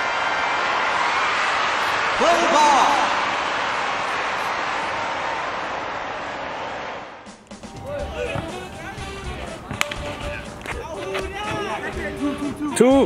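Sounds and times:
background music: 0:07.2 - 0:13.0.

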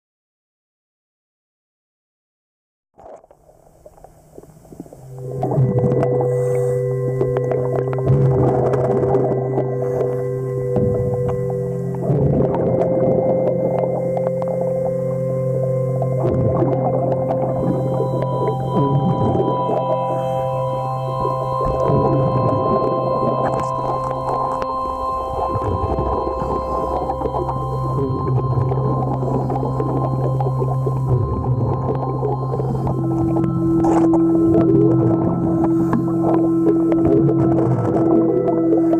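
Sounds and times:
underwater machine hum: 0:03.0 - 0:38.9
faint steady tones: 0:03.2 - 0:38.9
sharp clicks and crackles: 0:07.2 - 0:15.2.

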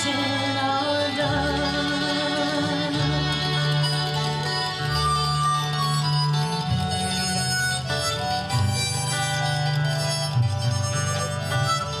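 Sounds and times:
acoustic folk band instrumental: 0:00.0 - 0:12.0.

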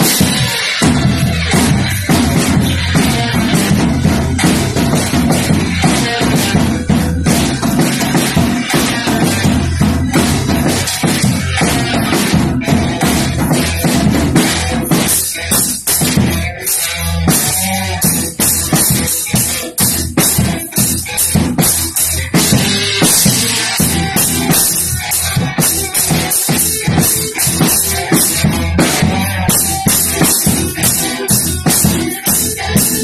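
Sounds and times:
bass drum beat: 0:00.0 - 0:33.0.

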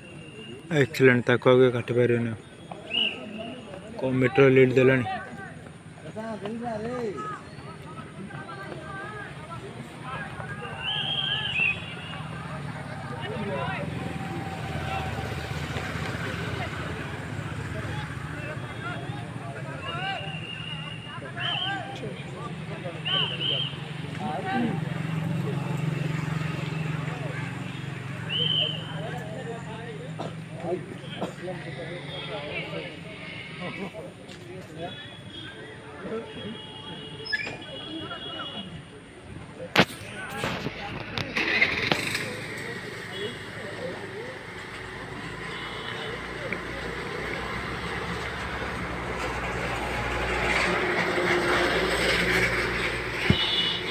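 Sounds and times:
distant voices and calls: 0:00.0 - 0:39.3
outdoor background noise: 0:00.0 - 0:53.9
short rushing noise: 0:39.8 - 0:42.8.

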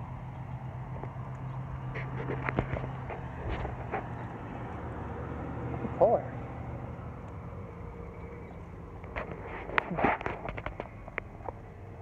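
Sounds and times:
car engine humming: 0:00.0 - 0:12.0.

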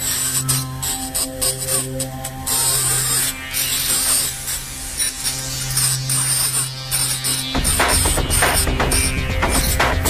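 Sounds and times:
buzzing hissing noise texture: 0:00.0 - 0:10.0
low synth drone: 0:00.0 - 0:10.0.

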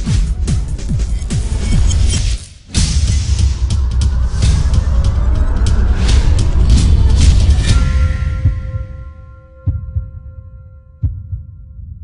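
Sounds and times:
heartbeat double thump: 0:06.6 - 0:09.0, 0:09.7 - 0:10.3, 0:11.0 - 0:12.0.

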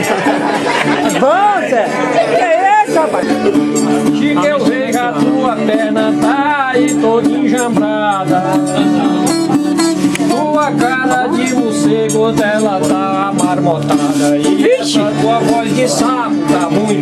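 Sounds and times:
voices talking: 0:00.0 - 0:06.0
strummed ten-string guitars: 0:00.0 - 0:17.0.

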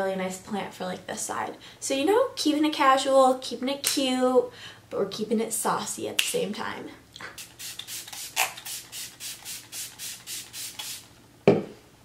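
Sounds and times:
pump spray bottle hissing: 0:07.3 - 0:11.1.

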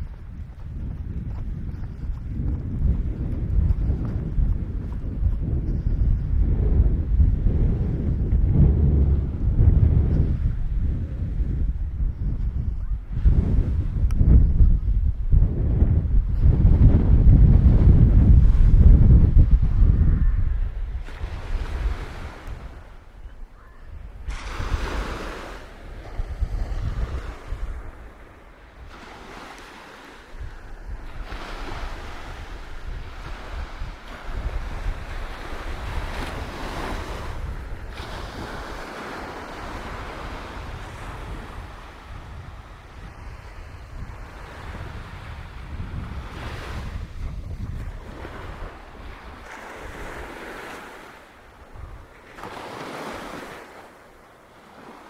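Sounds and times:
wind buffeting microphone: 0:00.0 - 0:54.1
waves washing up a beach: 0:17.7 - 0:55.0.

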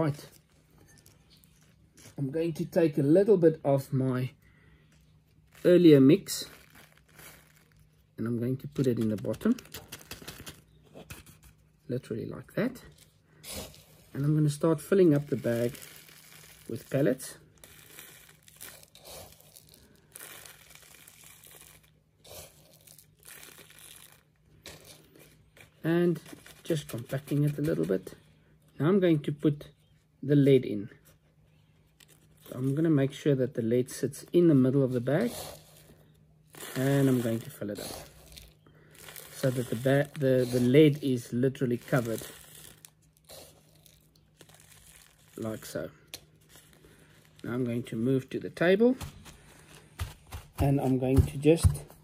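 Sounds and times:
plastic bag crinkling: 0:00.0 - 0:02.8, 0:04.4 - 0:11.8, 0:12.7 - 0:28.2, 0:34.3 - 0:52.0
fishing pellets rustling: 0:13.7 - 0:22.0, 0:22.6 - 0:25.1, 0:36.5 - 0:47.9.

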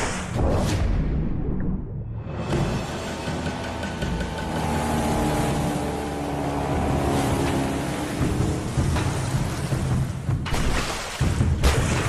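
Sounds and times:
motorboat roaring over sea: 0:02.3 - 0:10.4.

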